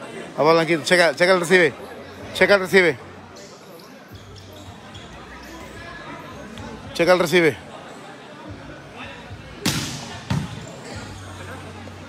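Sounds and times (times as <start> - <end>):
volleyball slaps echoing: 9.6 - 10.7.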